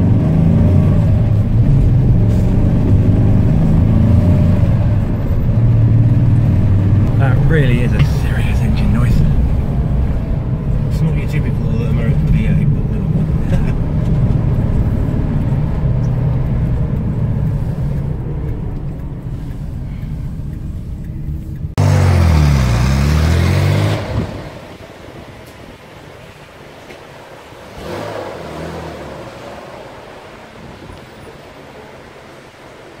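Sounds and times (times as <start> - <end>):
car engine from inside cabin: 0.0 - 33.0
road noise: 0.0 - 33.0.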